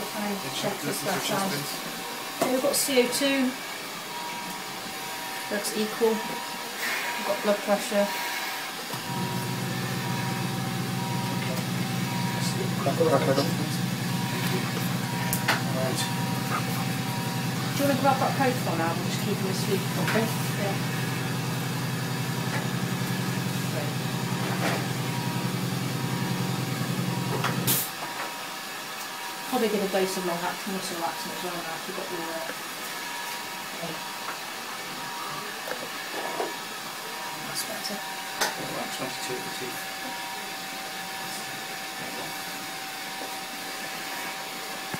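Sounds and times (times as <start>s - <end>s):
low machine hum: 9.0s - 27.8s.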